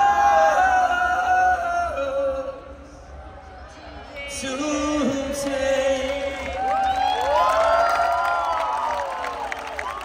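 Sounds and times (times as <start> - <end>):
crowd clapping: 5.4 - 10.0
crowd cheering and whooping: 6.3 - 10.0.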